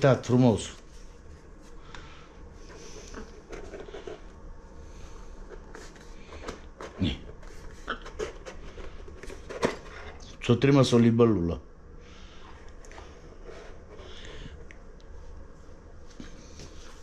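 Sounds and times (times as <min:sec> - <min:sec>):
small boxes being handled: 0:02.6 - 0:10.3.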